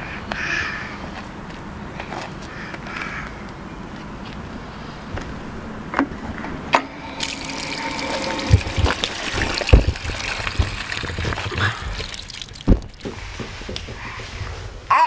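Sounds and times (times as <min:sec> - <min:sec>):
pipe humming: 0:06.4 - 0:14.3
low thumps: 0:06.4 - 0:14.8
water rushing onto metal grate: 0:07.0 - 0:13.8.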